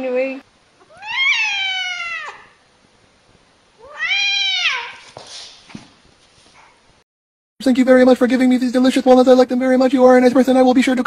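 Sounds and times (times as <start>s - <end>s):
cat meowing: 0.8s - 2.6s, 3.8s - 5.1s.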